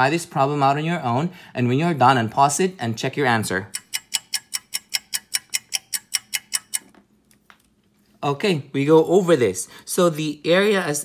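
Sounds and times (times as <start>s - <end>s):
fast clock-like ticking: 3.7s - 6.8s.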